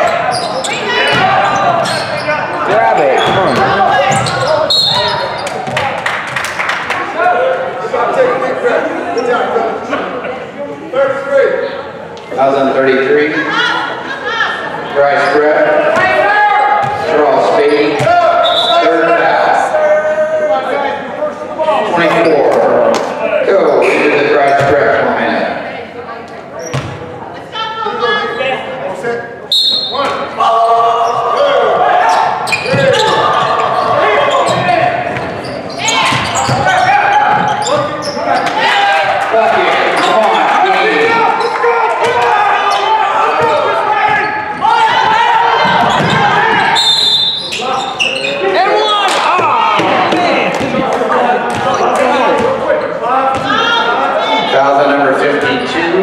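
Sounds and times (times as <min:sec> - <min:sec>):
chatter and shouts: 0:00.0 - 0:56.0.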